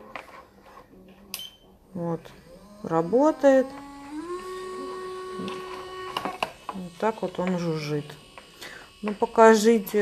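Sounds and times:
manicure drill buzzing: 0:02.0 - 0:10.0.

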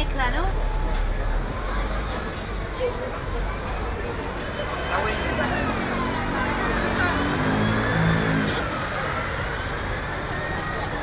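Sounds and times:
chatter of passers-by: 0:00.0 - 0:11.0
vehicle engine running close: 0:00.0 - 0:11.0.

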